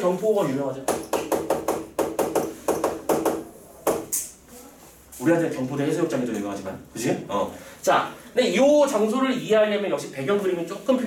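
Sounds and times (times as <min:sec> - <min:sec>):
chalk tapping on chalkboard: 0:00.9 - 0:04.3.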